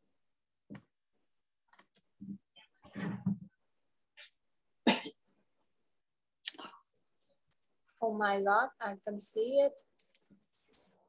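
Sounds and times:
person coughing: 4.8 - 5.2.

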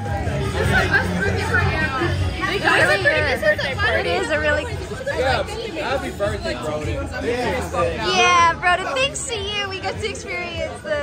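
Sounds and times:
people chatting: 0.0 - 11.0.

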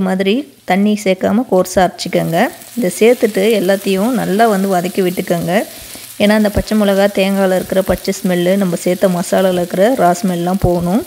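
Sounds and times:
light sizzle: 0.0 - 11.0.

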